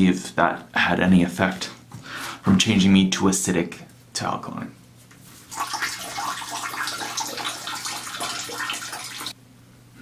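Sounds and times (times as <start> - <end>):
water rushing: 5.5 - 9.4.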